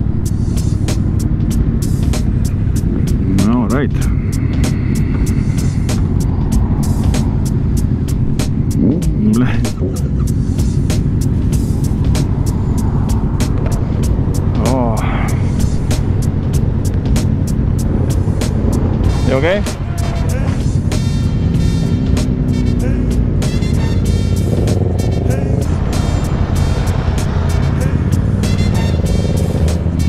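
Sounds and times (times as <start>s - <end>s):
motorcycle engine idling: 0.0s - 30.0s.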